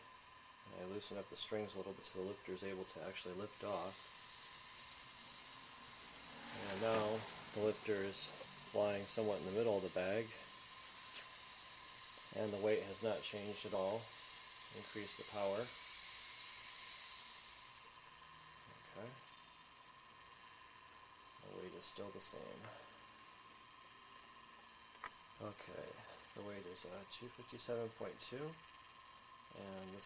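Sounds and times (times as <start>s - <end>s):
high-voltage corona discharge hiss: 0.0s - 30.0s.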